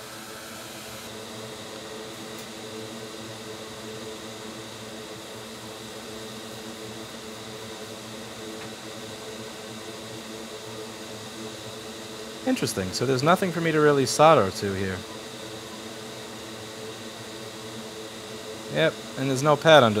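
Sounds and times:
small motor humming: 0:00.0 - 0:20.0.

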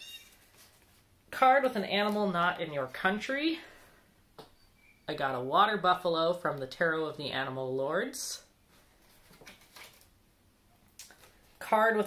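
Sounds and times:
cards rustling: 0:00.2 - 0:02.6, 0:08.9 - 0:10.1, 0:11.0 - 0:11.6.

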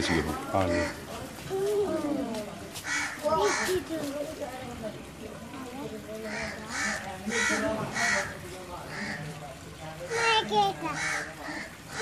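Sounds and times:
faint voices: 0:00.0 - 0:12.0
bird cawing: 0:10.1 - 0:12.0.

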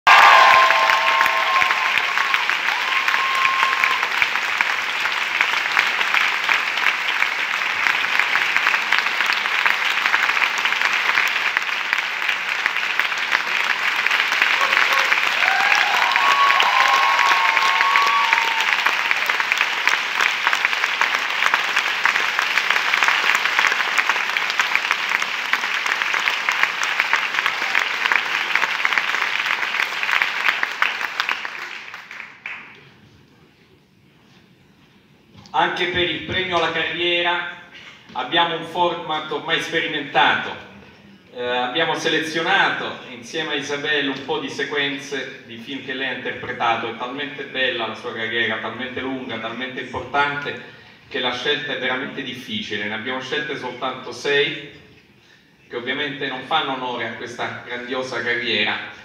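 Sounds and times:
audience applauding: 0:00.0 - 0:33.0.

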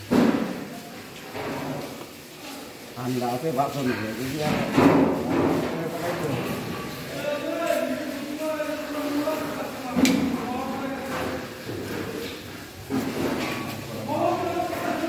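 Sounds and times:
people talking: 0:02.4 - 0:15.0.

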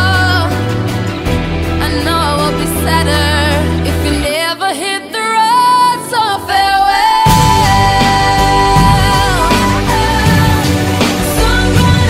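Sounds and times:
female pop vocal singing: 0:00.0 - 0:01.0, 0:01.8 - 0:12.0.

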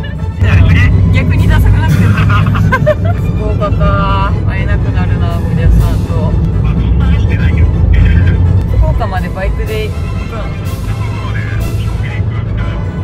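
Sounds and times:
background music: 0:00.0 - 0:13.0
low vehicle rumble: 0:00.0 - 0:13.0
voices: 0:00.0 - 0:13.0.

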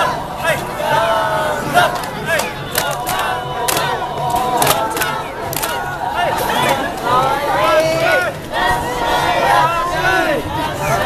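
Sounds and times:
crowd shouting chant calls: 0:00.0 - 0:11.0
sharp clap-like beat: 0:01.9 - 0:05.8.

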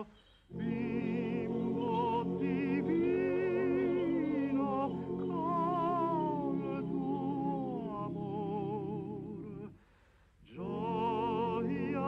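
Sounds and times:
choir singing slow song: 0:00.0 - 0:09.8, 0:10.4 - 0:12.0.

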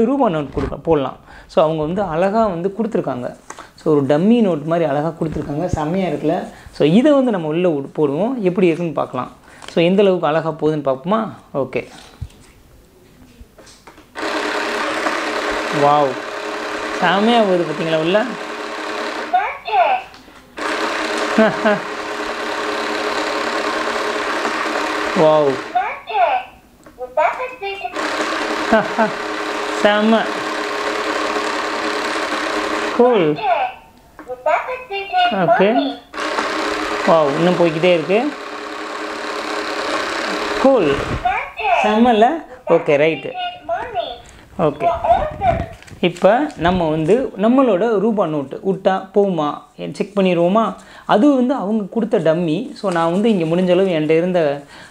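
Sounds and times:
voice: 0:00.0 - 0:10.3, 0:15.8 - 0:16.2, 0:17.0 - 0:18.4, 0:19.4 - 0:20.2, 0:25.2 - 0:28.0, 0:29.8 - 0:30.4, 0:33.0 - 0:36.0, 0:37.1 - 0:38.4, 0:40.6 - 0:54.6
person speaking: 0:00.0 - 0:12.2, 0:14.8 - 0:18.5, 0:19.3 - 0:31.2, 0:32.3 - 0:36.2, 0:36.9 - 0:38.5, 0:40.2 - 0:54.7
small electric motor whirring: 0:14.2 - 0:19.4, 0:20.6 - 0:25.8, 0:27.8 - 0:33.3, 0:36.0 - 0:41.2.

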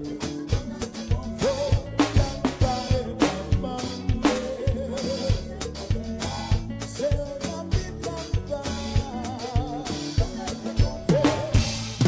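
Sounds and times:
electronic drum kit playing: 0:00.0 - 0:12.0
recorded song melody: 0:00.0 - 0:12.0.

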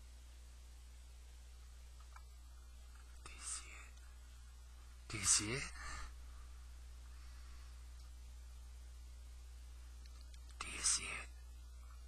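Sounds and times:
low electrical hum: 0:00.0 - 0:12.0
person whispering: 0:03.1 - 0:04.1, 0:05.1 - 0:06.2, 0:10.3 - 0:12.0.

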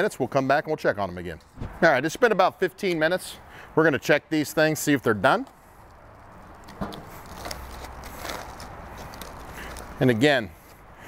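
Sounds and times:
foil rustling: 0:06.5 - 0:10.3.

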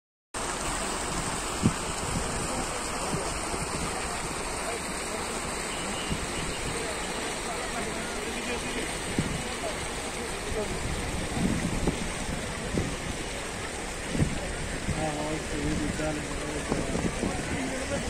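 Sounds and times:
faint crowd chatter: 0:00.4 - 0:18.0
water running over rocks: 0:00.4 - 0:18.0.

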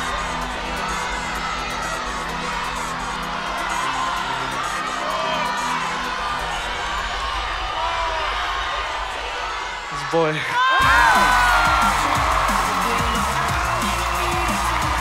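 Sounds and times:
background music with low notes: 0:00.0 - 0:09.2, 0:10.8 - 0:15.0
audience shouting and cheering: 0:00.0 - 0:15.0.

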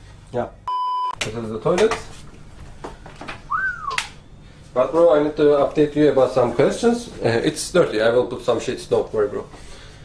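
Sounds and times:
person whistling rising and falling note: 0:03.5 - 0:04.2.

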